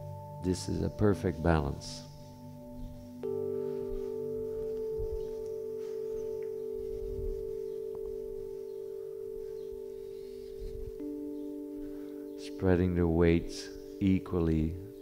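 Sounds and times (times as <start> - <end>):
singing bowl ringing: 0.0 - 15.0.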